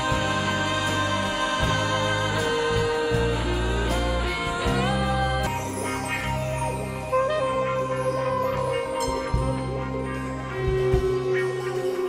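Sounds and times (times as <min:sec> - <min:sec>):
rock band with choir and orchestra: 0:00.0 - 0:12.0.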